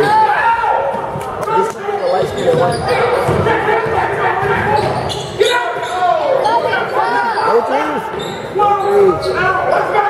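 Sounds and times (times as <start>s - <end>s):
spectators chattering: 0.0s - 10.0s
basketball bouncing on hardwood: 2.5s - 5.0s.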